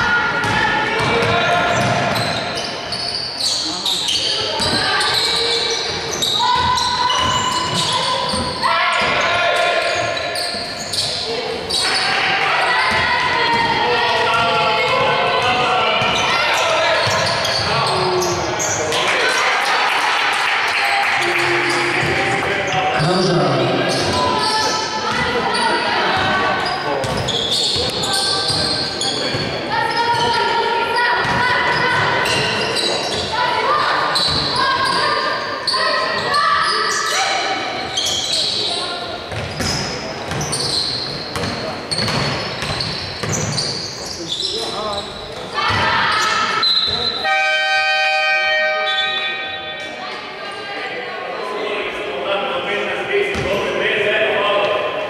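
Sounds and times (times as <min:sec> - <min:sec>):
players calling out: 0:00.0 - 0:47.4
basketball bouncing on wooden floor: 0:41.3 - 0:43.6
horn-like buzzer: 0:47.2 - 0:49.4.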